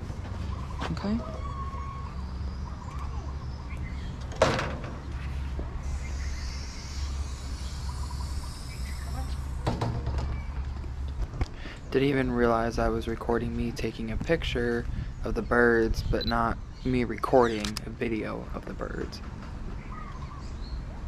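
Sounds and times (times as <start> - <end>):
steady low rumble: 10.7 - 19.2
camera handling noise: 17.5 - 17.9.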